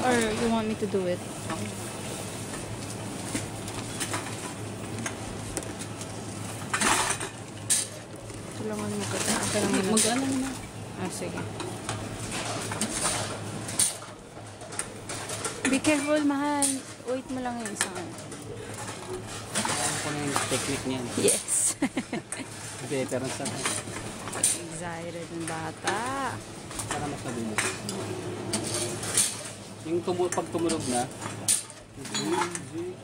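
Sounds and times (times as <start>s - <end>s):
cans and bottles clinking: 30.3s - 32.7s.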